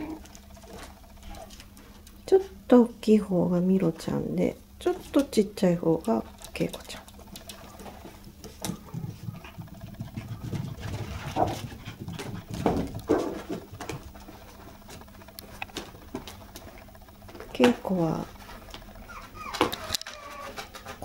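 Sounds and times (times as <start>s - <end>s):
puppies pattering on carpet: 4.9s - 21.0s.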